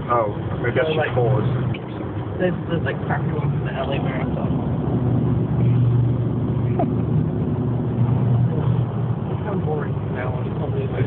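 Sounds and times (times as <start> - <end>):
car engine and tyres droning: 0.0 - 11.0.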